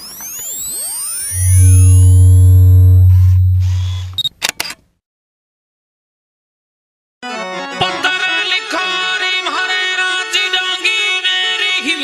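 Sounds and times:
high gliding tones: 0.4s - 4.2s
loud deep hum: 1.3s - 4.2s
camera shutter clicks: 4.1s - 4.8s.

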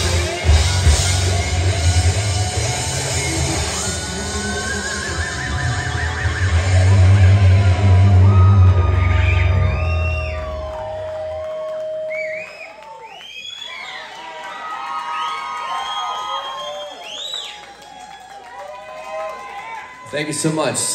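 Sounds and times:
heavy metal band chord: 0.0s - 10.3s
audience cheering and whooping: 0.0s - 20.9s.

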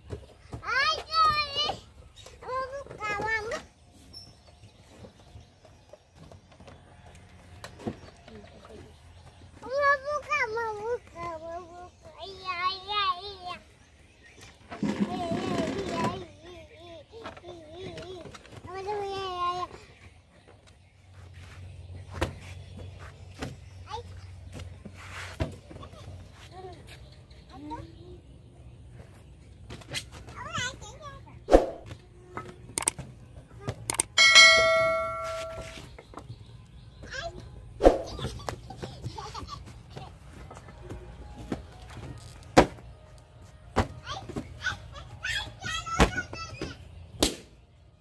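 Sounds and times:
quick clicks: 32.8s - 33.0s, 33.8s - 34.2s
bell chime ringing: 34.2s - 35.8s.

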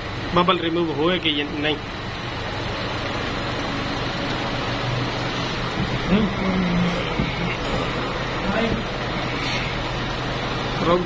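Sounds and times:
machine noisy hum: 0.0s - 11.0s.

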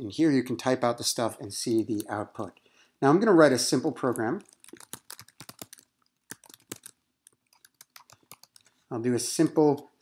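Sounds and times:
typing on computer keyboard: 4.1s - 8.8s.

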